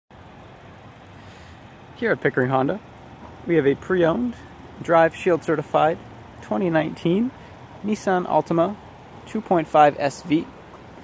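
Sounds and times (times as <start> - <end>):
faint traffic rumble: 0.1 - 11.0.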